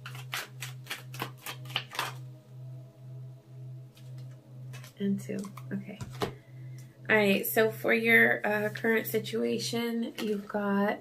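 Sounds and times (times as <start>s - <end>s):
cards being shuffled: 0.0s - 2.2s, 4.0s - 6.4s
pulsing low tone: 2.1s - 11.0s.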